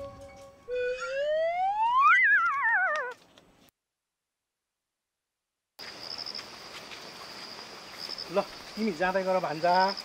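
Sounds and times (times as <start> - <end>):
sliding whistle tone: 0.7 - 3.1.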